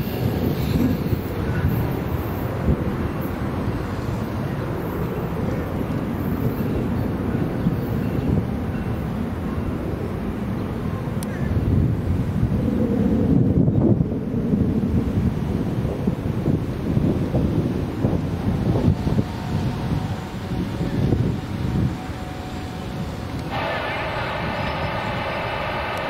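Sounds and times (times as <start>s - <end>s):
train passing rumble: 0.0s - 26.0s
wind rumbling on microphone: 0.0s - 26.0s.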